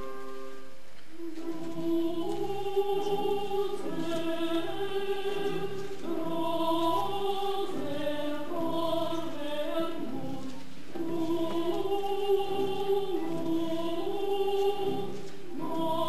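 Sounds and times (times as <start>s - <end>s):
choir singing slow chords: 0.0s - 16.0s.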